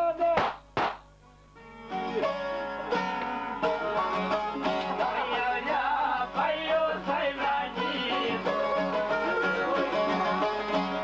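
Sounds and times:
lute strummed in lively rhythm: 0.0 - 11.0.

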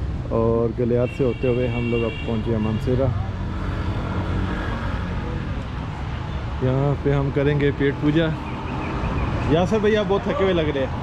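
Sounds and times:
motor vehicles rumbling: 0.0 - 11.0.

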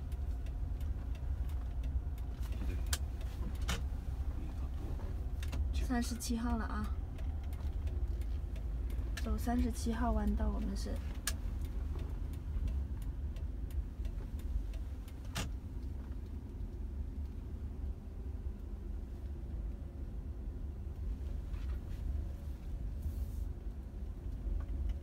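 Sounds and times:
faint regular ticking: 0.0 - 21.1
car road and engine rumble: 0.0 - 25.0.

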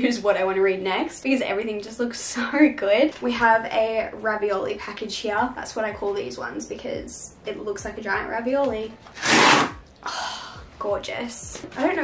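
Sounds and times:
paper tearing: 9.1 - 9.8.

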